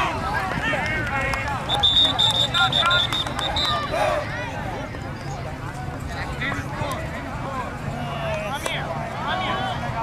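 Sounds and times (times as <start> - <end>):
overlapping voices: 0.0 - 4.4
referee whistle trilling: 1.7 - 3.8.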